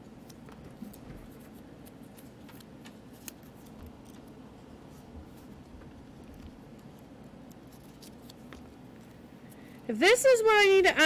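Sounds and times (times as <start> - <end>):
paper sticky notes clicking and rustling: 0.2 - 9.2.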